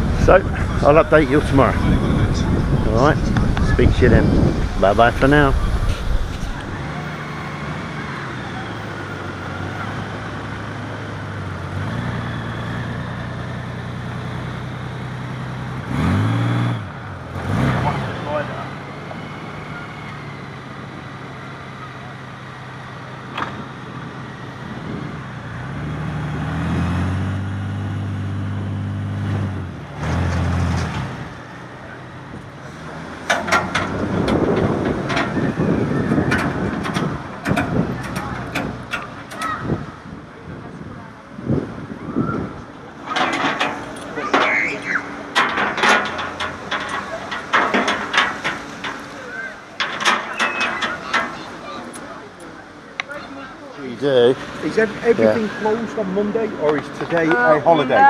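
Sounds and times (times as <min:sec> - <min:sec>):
vehicle engine revving: 0:00.0 - 0:50.2
sharp clicks and knocks: 0:33.2 - 0:35.5, 0:36.1 - 0:39.6, 0:43.0 - 0:44.6, 0:45.2 - 0:49.2, 0:49.8 - 0:52.1.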